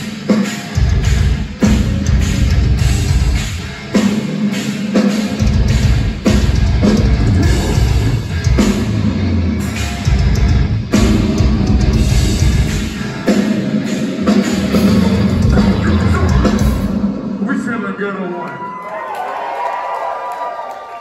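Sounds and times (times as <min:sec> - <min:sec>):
heavy metal band playing live: 0:00.0 - 0:18.2.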